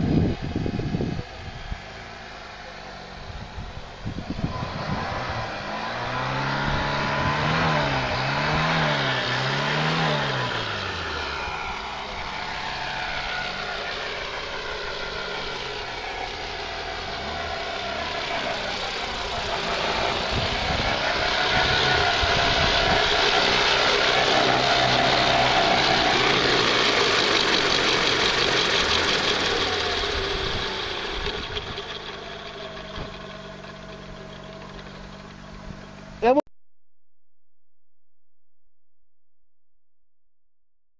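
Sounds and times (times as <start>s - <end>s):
rc helicopter motor and rotors whining: 0.0s - 36.4s.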